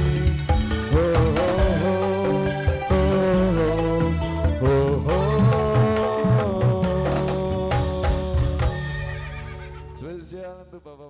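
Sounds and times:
live band music: 0.0s - 10.4s.

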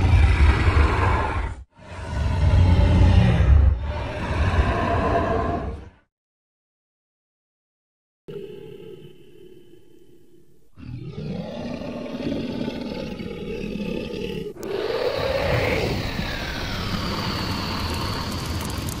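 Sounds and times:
dragon roaring: 0.0s - 6.0s, 10.8s - 19.0s.

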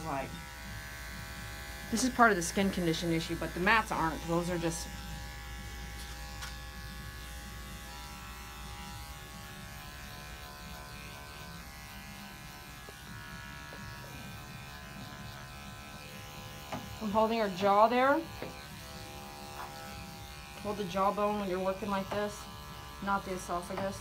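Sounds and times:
electric clipper buzzing: 0.0s - 24.0s.

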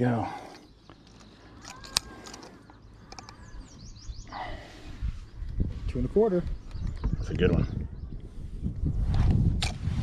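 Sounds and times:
birds chirping: 0.0s - 8.9s.

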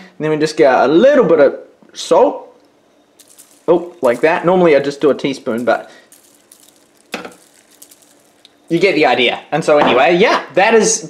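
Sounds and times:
salt rattling from jar: 3.1s - 9.5s.

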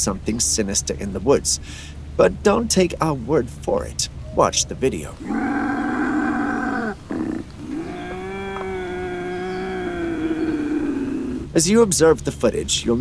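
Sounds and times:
eerie drawn-out cries: 5.2s - 11.6s.

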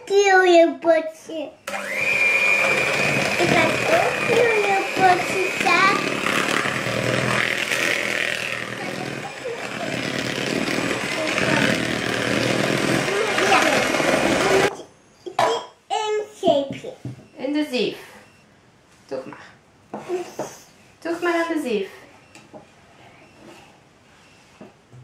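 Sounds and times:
electric mixer whisking batter: 1.7s - 14.7s
people talking: 3.3s - 6.2s, 8.8s - 10.1s, 11.0s - 11.9s, 13.0s - 18.2s, 19.1s - 22.1s.

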